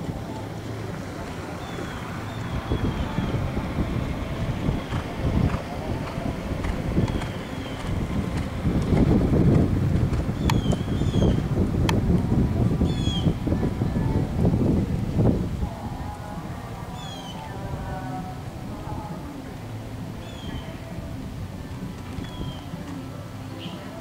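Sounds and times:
wind rumbling on microphone: 0:00.0 - 0:24.0.

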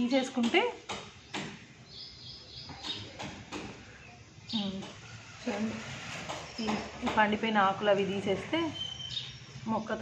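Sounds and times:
faint high twittering chirp: 0:01.1 - 0:10.0.

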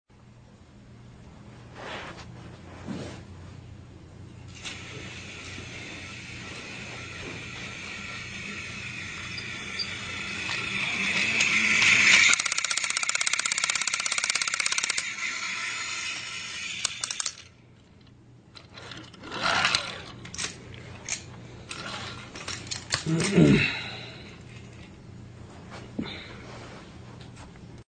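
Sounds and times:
small motor whirring and rattling: 0:04.5 - 0:23.4.

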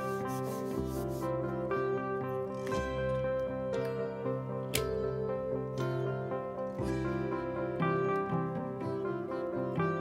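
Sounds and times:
instrumental music: 0:00.0 - 0:10.0.

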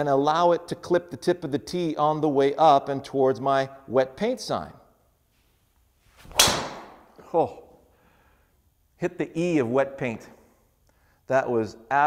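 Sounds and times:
golf club swishing: 0:05.3 - 0:07.3
golf club striking ball: 0:06.2 - 0:07.2.

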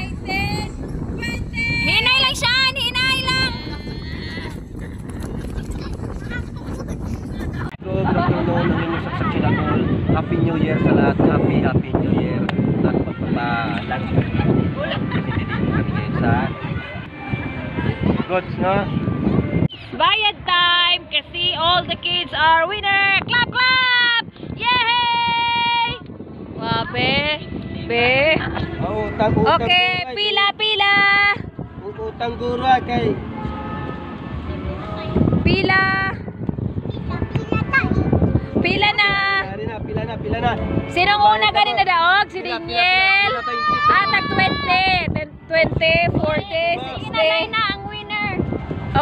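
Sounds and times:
wind rumbling on microphone: 0:00.0 - 0:49.0
children shouting: 0:43.2 - 0:44.8.

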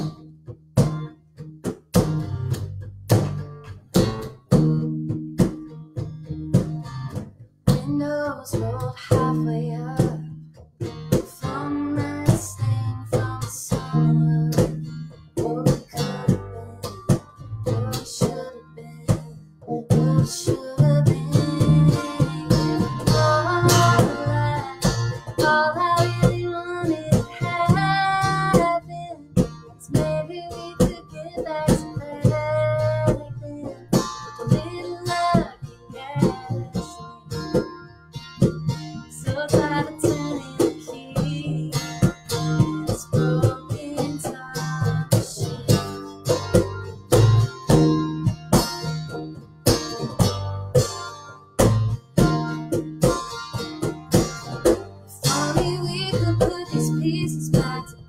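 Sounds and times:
acoustic bass guitar: 0:00.0 - 0:58.0
acoustic guitar strumming: 0:00.0 - 0:58.0
woman singing: 0:07.7 - 0:10.4, 0:11.1 - 0:37.6, 0:39.0 - 0:46.0, 0:55.0 - 0:58.0.

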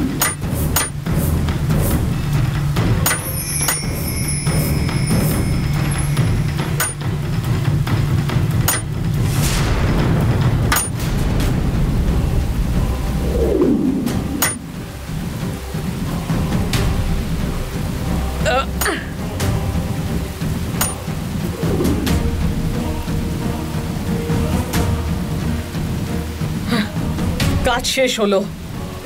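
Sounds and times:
dramatic background music: 0:00.0 - 0:29.0
heavy rain: 0:00.0 - 0:29.0
thunder rumbling: 0:00.0 - 0:29.0.

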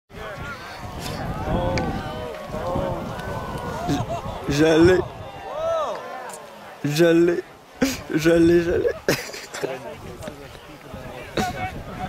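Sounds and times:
people talking and calling out: 0:00.1 - 0:12.0.

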